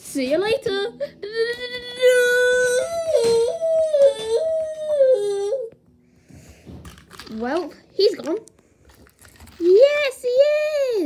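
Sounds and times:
child wailing like a siren: 2.0s - 5.7s.

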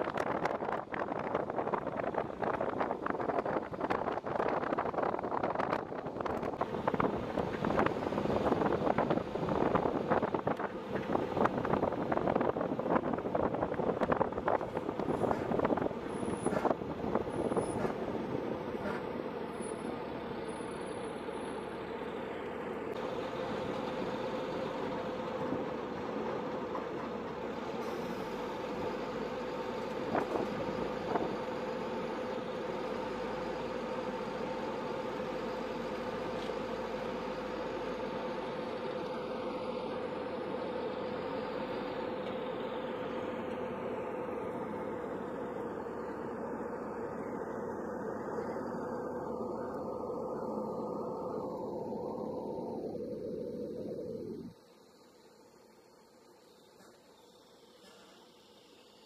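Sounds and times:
armored vehicle engine drone: 0.0s - 59.0s.

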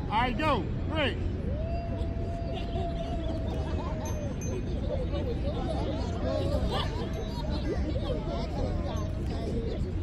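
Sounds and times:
scattered voices: 2.3s - 10.0s.

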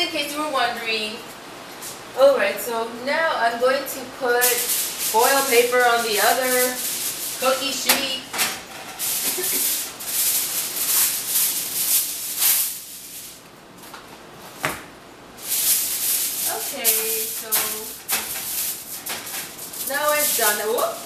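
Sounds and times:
aluminium foil crinkling: 4.4s - 13.4s, 15.4s - 21.0s.

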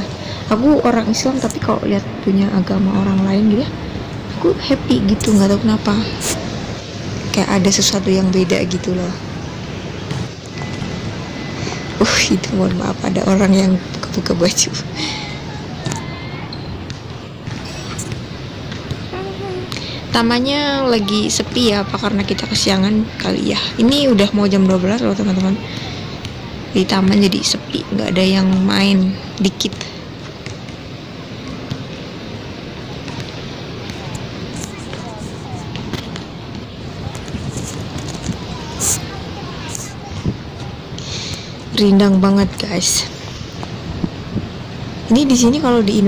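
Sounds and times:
distant voices: 0.0s - 46.0s
outdoor background noise: 0.0s - 46.0s.

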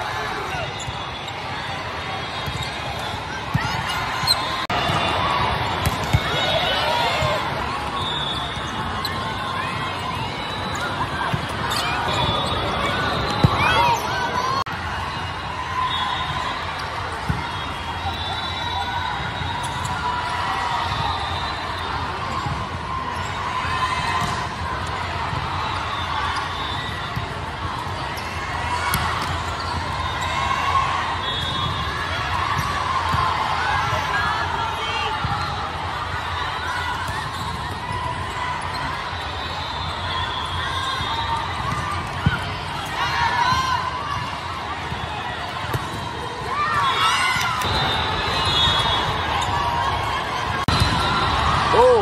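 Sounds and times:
crowd chatter in hall: 0.0s - 52.0s
players and spectators talking: 0.0s - 52.0s
volleyballs hit and bouncing: 1.9s - 14.9s, 24.0s - 25.5s, 41.1s - 51.9s
shoes squeaking on court: 2.2s - 5.2s, 5.8s - 14.6s.

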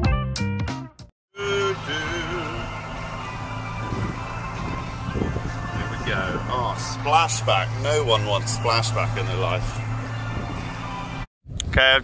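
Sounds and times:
background music with a beat: 0.0s - 1.1s
tractor engine running: 1.4s - 11.3s.

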